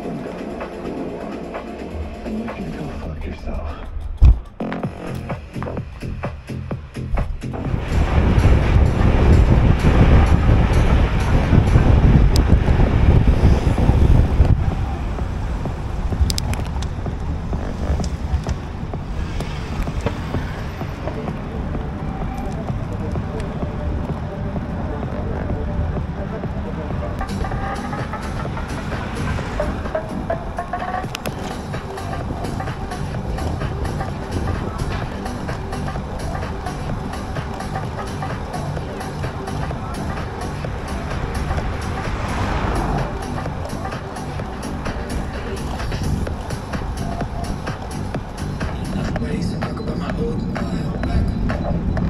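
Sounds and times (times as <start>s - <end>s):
background music: 0.0s - 52.0s
wind rumbling on microphone: 3.0s - 52.0s.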